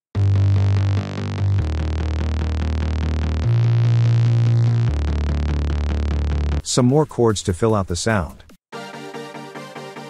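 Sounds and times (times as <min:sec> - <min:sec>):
sustained synth bass: 0:00.1 - 0:06.6.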